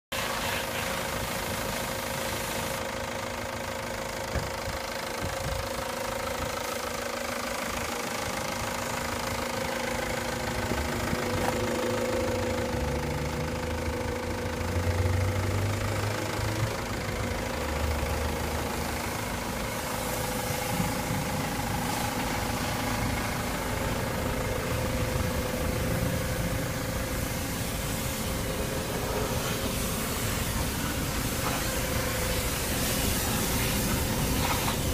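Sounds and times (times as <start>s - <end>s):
diesel van engine idling: 0.2s - 34.9s.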